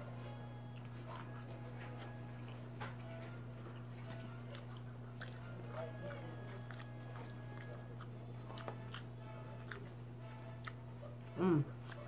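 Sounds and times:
chewing: 0.0 - 12.0
steady low hum: 0.0 - 12.0.

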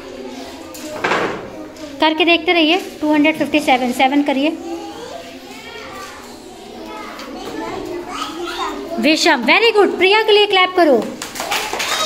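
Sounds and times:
young children chattering: 0.0 - 12.0.

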